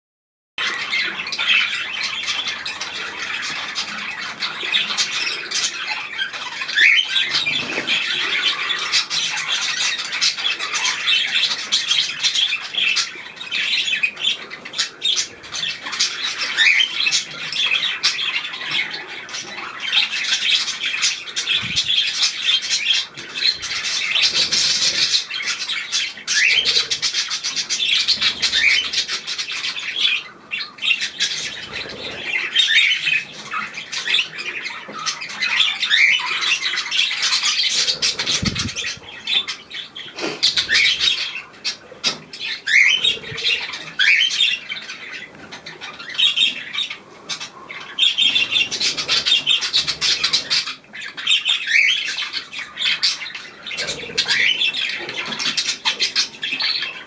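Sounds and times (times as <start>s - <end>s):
small birds chattering and chirping: 0.6s - 57.0s.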